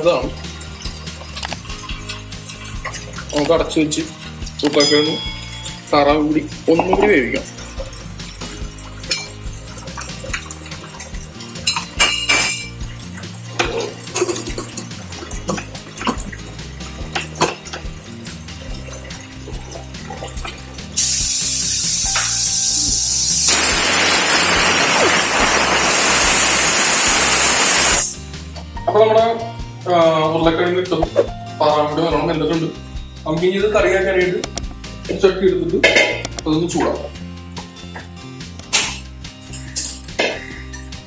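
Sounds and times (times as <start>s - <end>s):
steam venting hiss: 21.0s - 28.2s.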